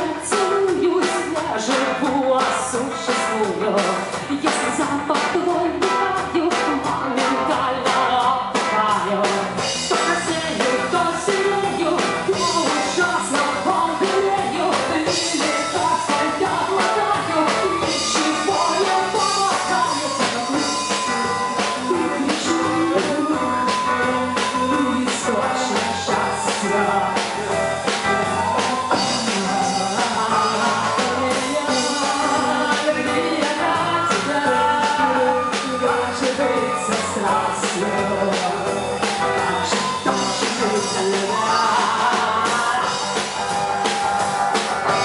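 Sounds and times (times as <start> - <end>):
woman singing loudly: 0.0 - 27.4, 28.5 - 43.7
bass guitar: 0.0 - 45.0
drum kit: 0.0 - 45.0
electric guitar: 0.0 - 45.0
live rock band playing: 0.0 - 45.0.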